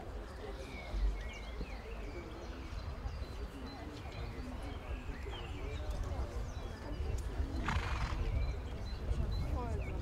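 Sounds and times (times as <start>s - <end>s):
murmuring voices: 0.0s - 10.0s.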